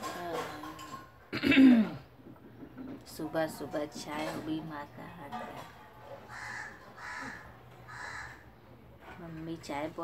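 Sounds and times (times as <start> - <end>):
bird harsh calls: 6.3 - 8.6.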